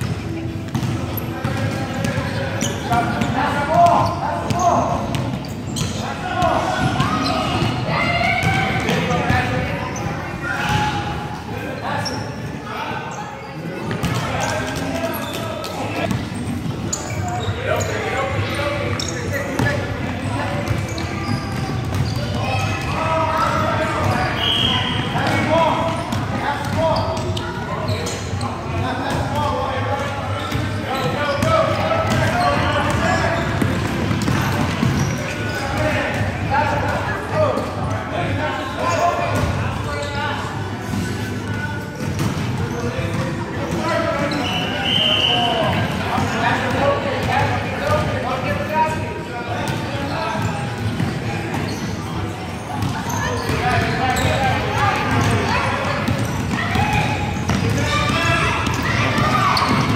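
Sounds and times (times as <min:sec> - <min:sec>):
basketballs bouncing on wooden floor: 0:00.0 - 0:06.0, 0:20.6 - 0:24.2, 0:31.3 - 0:35.2, 0:52.8 - 0:59.9
children shouting and chattering: 0:00.0 - 0:41.9, 0:42.6 - 0:59.9.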